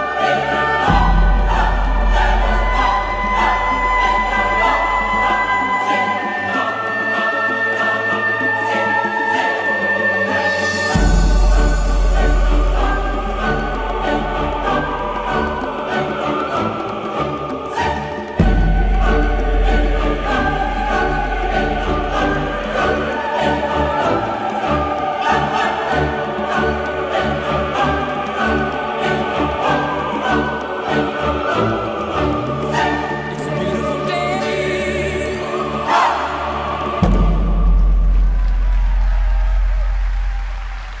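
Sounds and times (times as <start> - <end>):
choir singing over sustained chords: 0.0 - 41.0.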